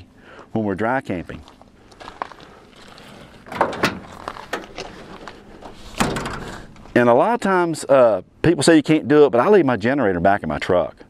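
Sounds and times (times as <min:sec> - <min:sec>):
tailgate clunk with ringing: 0:03.5 - 0:04.7, 0:06.0 - 0:06.7
tailgate clicks and knocks: 0:03.5 - 0:05.0, 0:05.6 - 0:06.8.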